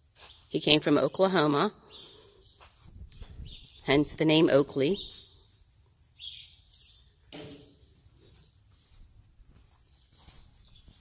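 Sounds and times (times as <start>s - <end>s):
muffled hoofbeats on soft ground: 8.0s - 11.0s.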